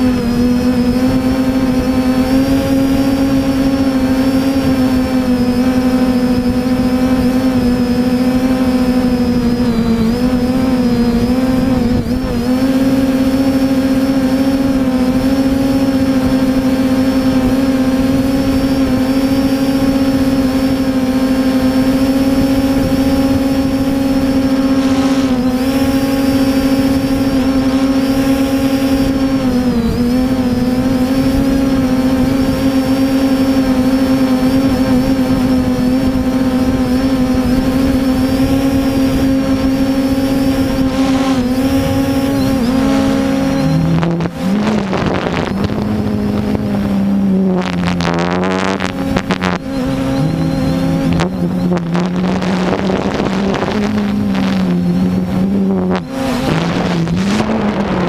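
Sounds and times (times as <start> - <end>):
drone propellers humming: 0.0 - 58.0.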